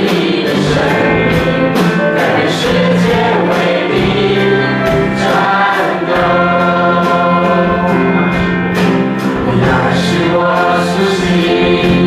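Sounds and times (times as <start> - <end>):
band held chords: 0.0 - 12.0
group singing worship song: 0.0 - 12.0
percussion hits: 0.0 - 12.0.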